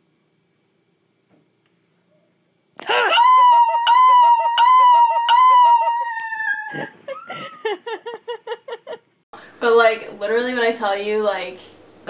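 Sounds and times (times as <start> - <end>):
woman screaming: 2.8 - 7.4
woman laughing: 2.9 - 9.1.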